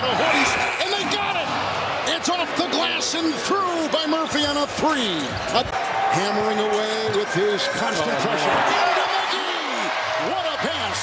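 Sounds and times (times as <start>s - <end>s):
arena crowd voices: 0.0s - 11.0s.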